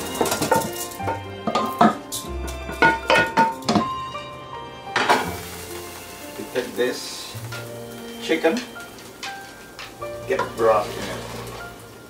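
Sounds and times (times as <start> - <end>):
utensil scraping a frying pan: 0.0 - 4.0, 4.9 - 12.0
background music: 0.0 - 12.0.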